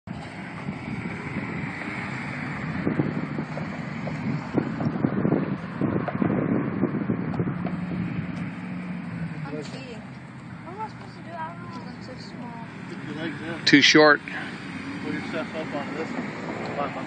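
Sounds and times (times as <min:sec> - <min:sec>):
wind buffeting microphone: 0:00.1 - 0:13.7, 0:14.5 - 0:17.0.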